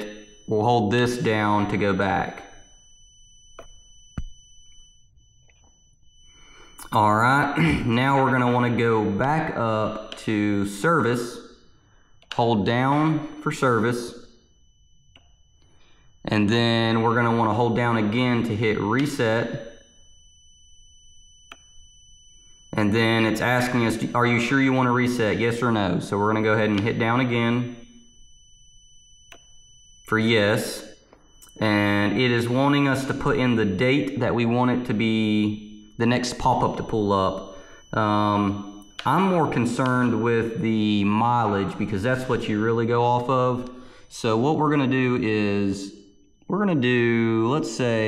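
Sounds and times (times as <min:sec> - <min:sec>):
faint high-pitched whine: 0:21.4 - 0:28.1.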